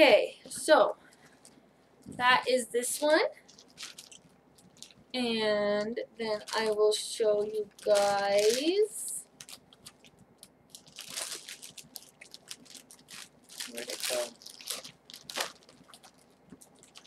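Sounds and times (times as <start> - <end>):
crinkles and small clicks: 1.1 - 2.2, 3.4 - 5.1, 9.3 - 17.0
fabric rustling: 3.0 - 17.0.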